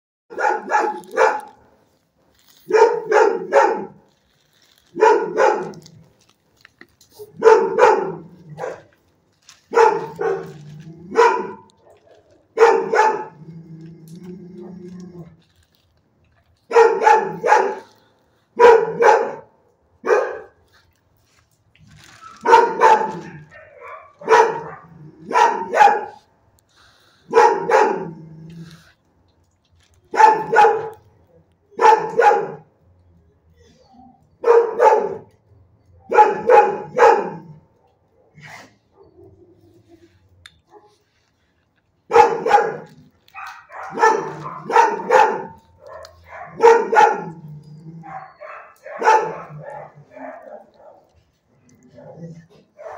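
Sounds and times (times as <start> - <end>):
dog barking loudly: 0.3 - 1.7, 2.7 - 4.1, 4.9 - 5.9, 7.2 - 9.0, 9.7 - 13.4, 16.7 - 18.0, 18.6 - 20.6, 22.3 - 26.3, 27.2 - 28.4, 30.1 - 31.0, 31.7 - 32.7, 34.4 - 35.3, 36.0 - 37.6, 42.1 - 51.1, 51.9 - 52.9.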